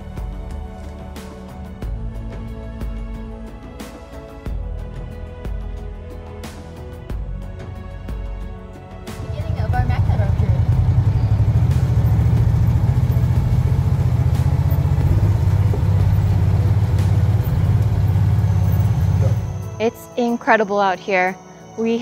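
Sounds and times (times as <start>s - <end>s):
utility vehicle engine rumble: 0.0s - 5.2s, 8.6s - 22.0s.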